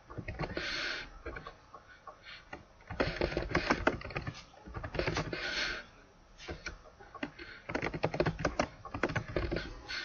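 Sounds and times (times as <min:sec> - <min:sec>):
computer keyboard typing: 0:02.9 - 0:05.4, 0:07.2 - 0:09.7.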